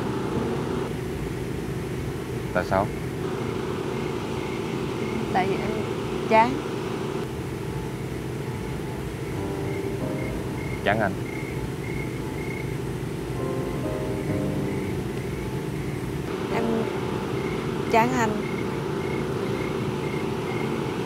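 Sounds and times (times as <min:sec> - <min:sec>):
soft background music: 0:00.0 - 0:01.6, 0:08.7 - 0:21.0
steady low hum: 0:00.0 - 0:21.0.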